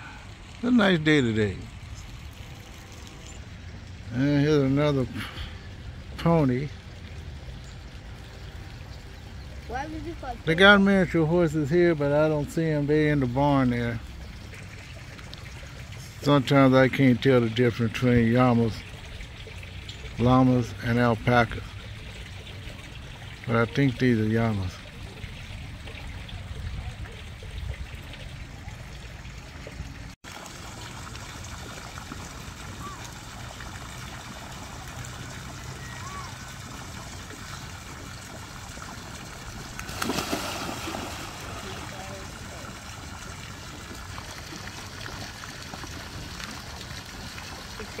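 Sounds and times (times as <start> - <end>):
water splashing into pond: 0.0 - 48.0.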